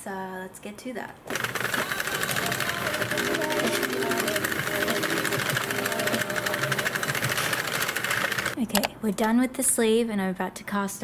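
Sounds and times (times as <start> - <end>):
knitting machine needles clicking: 1.3 - 8.9
soft background music: 1.4 - 7.3.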